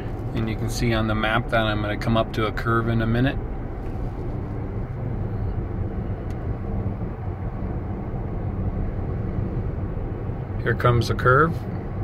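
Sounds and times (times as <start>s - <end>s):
road and tyre noise in car: 0.0s - 12.0s.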